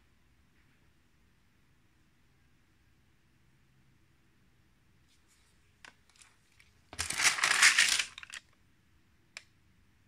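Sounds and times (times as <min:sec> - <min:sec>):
page turning rustle: 0:05.1 - 0:08.4.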